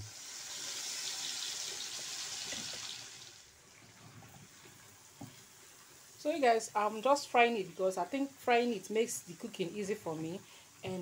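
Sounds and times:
paste sizzling in hot oil: 0:00.0 - 0:03.4.

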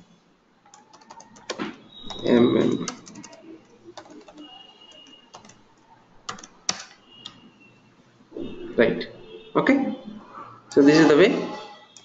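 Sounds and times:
keyboard keystrokes: 0:04.0 - 0:05.6, 0:06.3 - 0:07.4.

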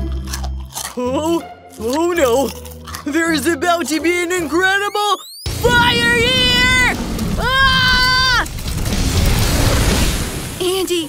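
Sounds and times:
flames blasting whoosh: 0:05.5 - 0:11.0
person shouting: 0:05.6 - 0:08.4.

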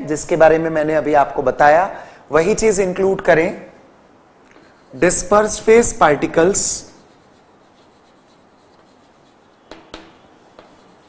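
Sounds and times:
chalk scratching on blackboard: 0:04.5 - 0:11.0
chalk tapping on board: 0:06.9 - 0:11.0.

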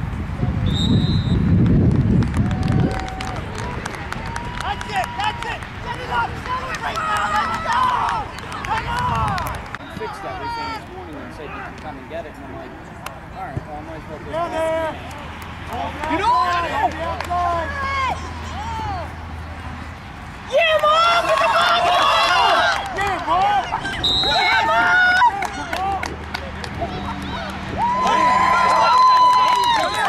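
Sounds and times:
people shouting: 0:20.5 - 0:26.0.

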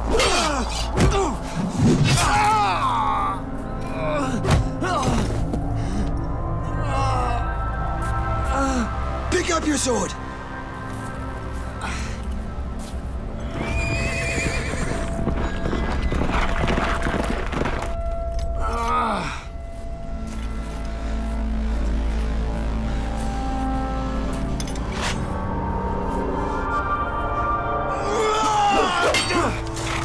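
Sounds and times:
film score music with held tones: 0:00.0 - 0:30.0
horse neighing: 0:13.5 - 0:16.5.

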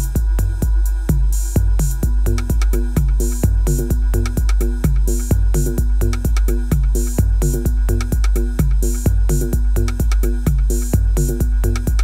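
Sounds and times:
kick drum: 0:00.0 - 0:12.0
ticking hi-hats: 0:00.0 - 0:12.0.

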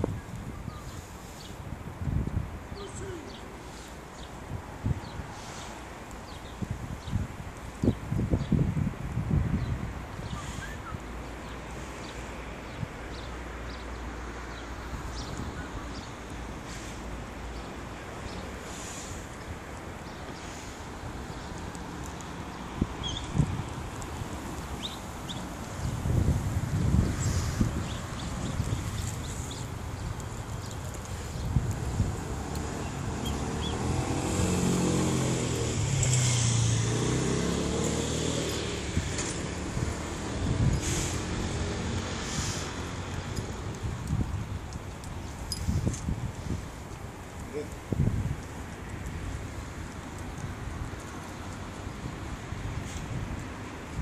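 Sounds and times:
motor vehicle passing: 0:20.0 - 0:44.2.

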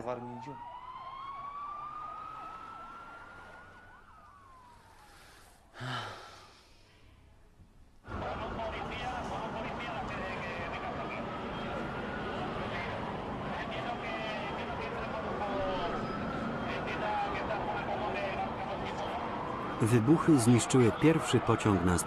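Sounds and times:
emergency vehicle siren wailing: 0:00.0 - 0:05.6, 0:08.1 - 0:22.0
traffic noise: 0:00.0 - 0:22.0
people calling and talking: 0:08.0 - 0:22.0.

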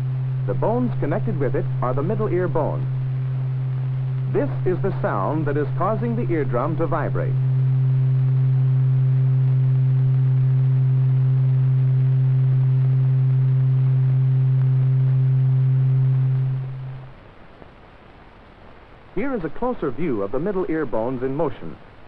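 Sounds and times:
steady low pure tone: 0:00.0 - 0:22.0.

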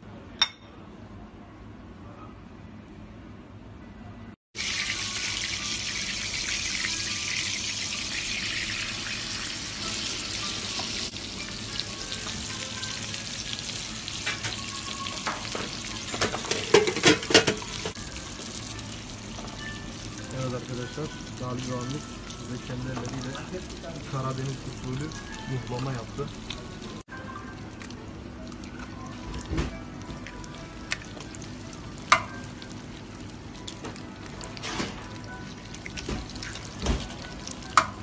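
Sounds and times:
meat sizzling in a pan: 0:04.6 - 0:17.0.

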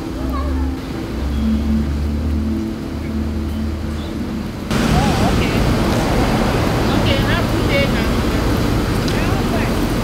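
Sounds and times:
higher hum: 0:00.0 - 0:09.0.

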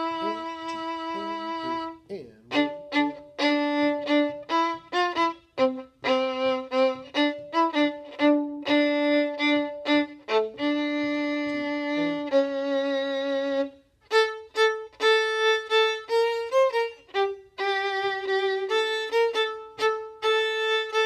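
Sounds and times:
solo violin playing: 0:00.0 - 0:21.0.

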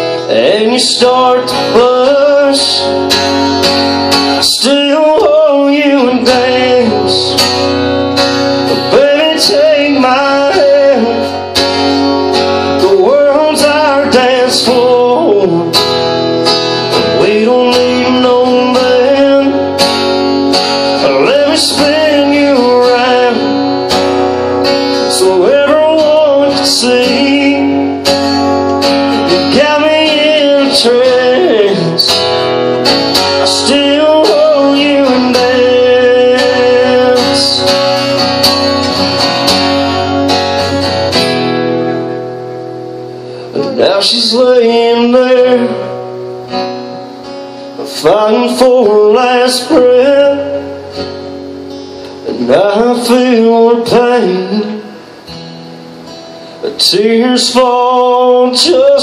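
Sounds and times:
person singing: 0:00.0 - 0:03.2, 0:04.3 - 0:07.7, 0:08.6 - 0:16.0, 0:16.8 - 0:20.2, 0:20.9 - 0:32.2, 0:33.1 - 0:40.2, 0:43.4 - 0:46.1
acoustic guitar strumming: 0:00.0 - 0:59.0.

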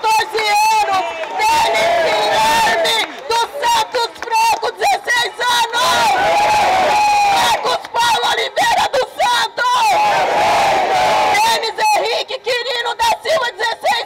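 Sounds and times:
crowd chanting and shouting: 0:00.0 - 0:14.0.

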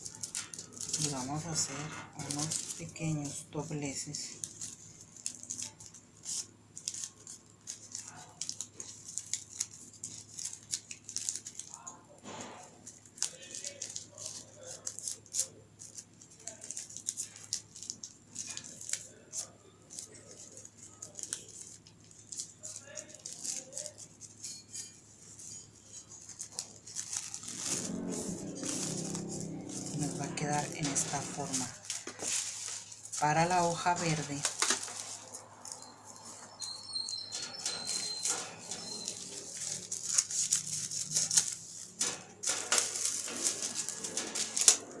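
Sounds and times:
paper crinkling and rustling: 0:00.0 - 0:45.0.

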